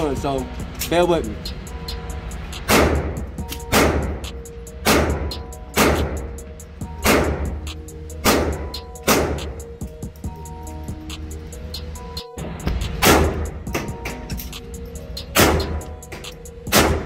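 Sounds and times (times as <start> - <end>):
background music: 0.0 - 17.0
pistol shots echoing indoors: 2.7 - 4.2, 4.8 - 6.4, 7.0 - 7.6, 8.2 - 9.5, 13.0 - 13.6, 15.4 - 15.8, 16.7 - 17.0.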